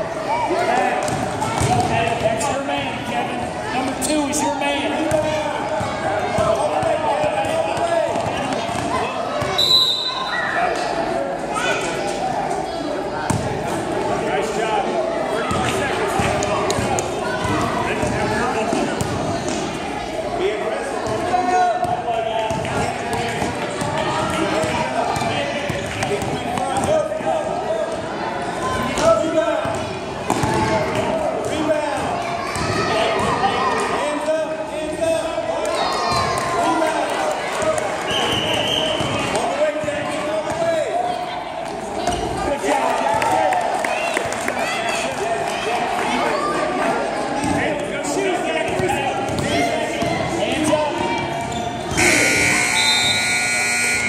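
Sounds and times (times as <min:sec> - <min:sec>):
voices: 0:00.3 - 0:54.0
scoreboard buzzer: 0:52.0 - 0:54.0.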